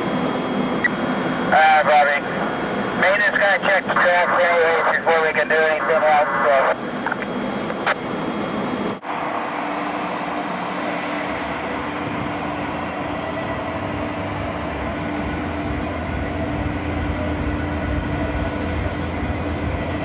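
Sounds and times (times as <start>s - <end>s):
light-rail train running on tracks: 9.0s - 20.0s.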